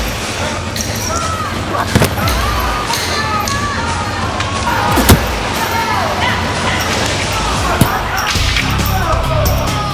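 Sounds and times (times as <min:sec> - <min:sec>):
wooden staff striking: 0:04.9 - 0:05.4.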